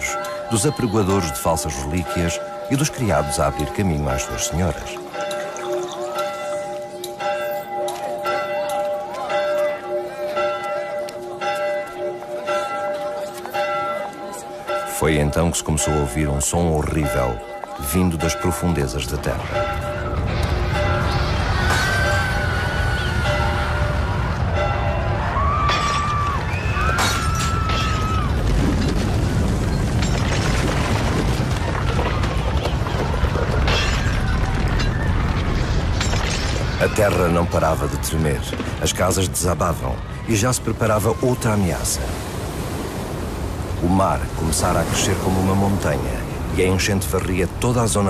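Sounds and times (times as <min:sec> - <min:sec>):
church bells ringing: 0:00.0 - 0:26.3
crowd voices: 0:00.0 - 0:28.4, 0:31.4 - 0:36.0
falling masonry and tiles crashing: 0:25.4 - 0:38.8.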